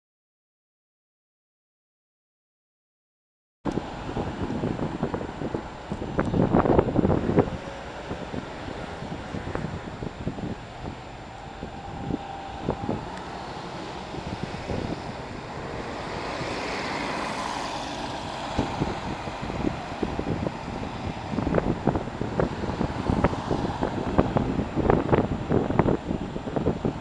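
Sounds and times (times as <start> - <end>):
buses moving: 3.7 - 27.0
street traffic: 3.7 - 27.0
wind buffeting microphone: 3.7 - 27.0.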